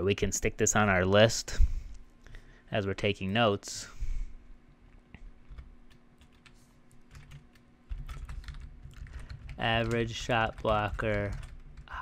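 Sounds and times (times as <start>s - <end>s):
computer keyboard typing: 5.4s - 12.0s.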